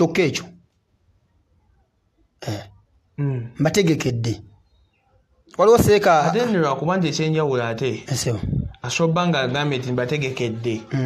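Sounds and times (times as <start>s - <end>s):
man clearing throat: 2.4s - 2.8s.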